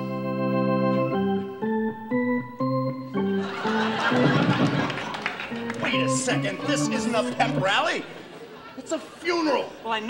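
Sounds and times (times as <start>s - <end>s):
electronic organ playing: 0.0s - 8.2s.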